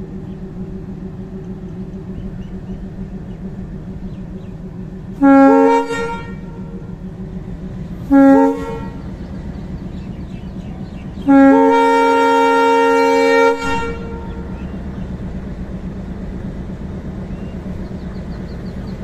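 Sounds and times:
moving train rumble: 0.0 - 19.0
locomotive horn blasts: 5.2 - 7.0, 8.0 - 9.2, 11.2 - 14.7.

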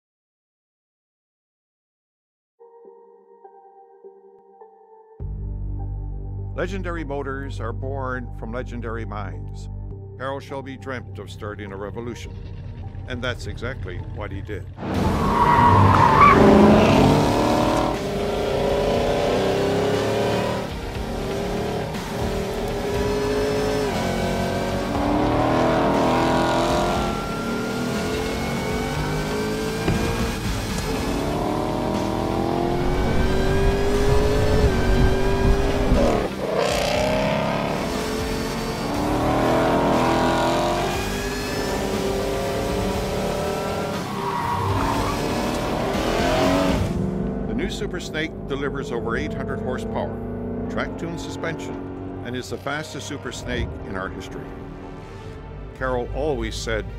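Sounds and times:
car engine revving through gears: 14.8 - 52.3.

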